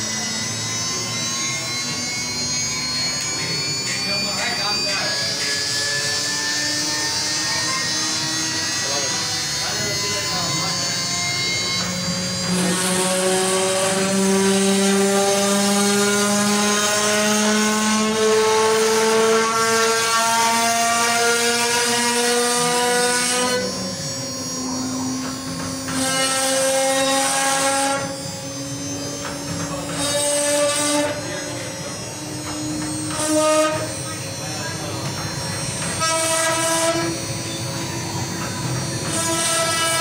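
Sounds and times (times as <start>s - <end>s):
cutter hissing in wood: 0.0s - 40.0s
router spindle whining: 0.0s - 40.0s.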